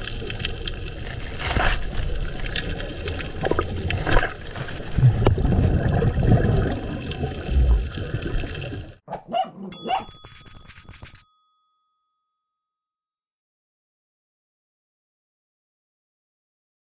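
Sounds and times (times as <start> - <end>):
churning bubbling underwater water: 0.0 - 9.0.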